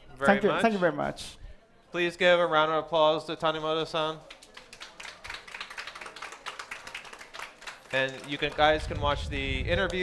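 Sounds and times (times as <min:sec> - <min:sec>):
small audience applause: 0:04.0 - 0:10.0.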